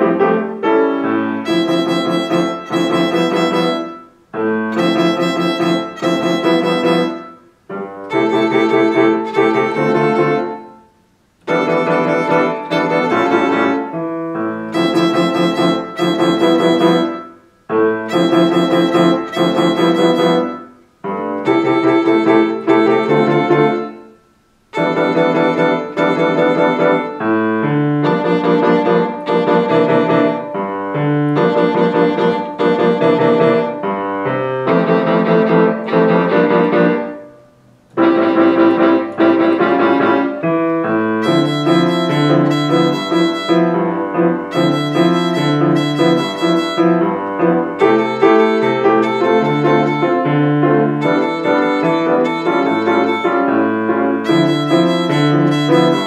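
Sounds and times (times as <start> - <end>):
grand piano accompaniment: 0.0 - 56.0
violin bowing open strings: 1.4 - 4.1, 4.7 - 7.4, 8.0 - 10.6, 11.5 - 17.3, 18.0 - 20.6, 21.4 - 24.0, 24.8 - 27.2, 41.0 - 56.0.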